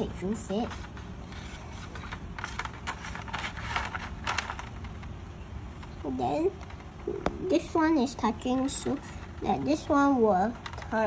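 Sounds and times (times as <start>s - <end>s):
scraping and rustling handling noise: 0.0s - 11.0s.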